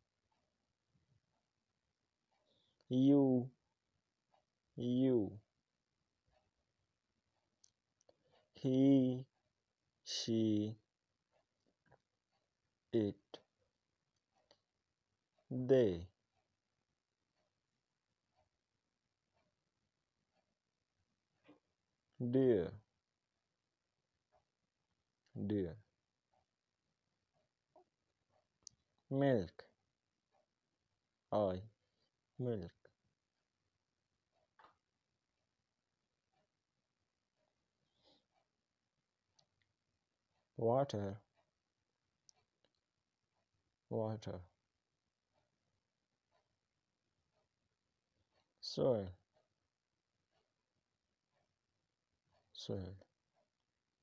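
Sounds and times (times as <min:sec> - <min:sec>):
person speaking a word: 0:32.4 - 0:32.8.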